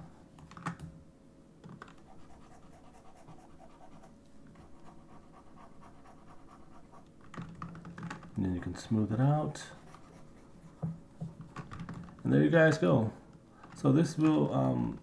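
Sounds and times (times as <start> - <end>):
faint hum: 0.0 - 15.0
stylus scratching on drawing tablet: 2.0 - 7.2, 9.5 - 10.9.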